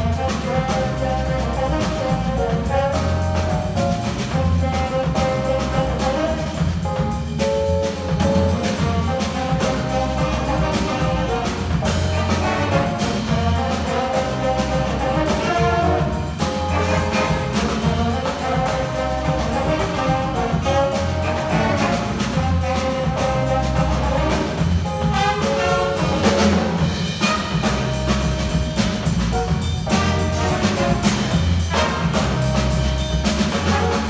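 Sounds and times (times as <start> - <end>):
jazz big band playing: 0.0 - 34.0.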